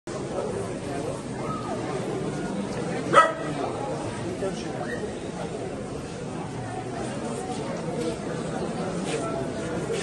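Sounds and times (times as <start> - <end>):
murmur of people talking: 0.1 - 10.0.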